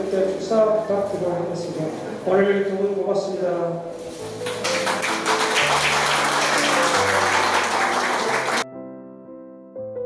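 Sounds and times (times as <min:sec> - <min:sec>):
audience clapping: 0:04.4 - 0:08.6.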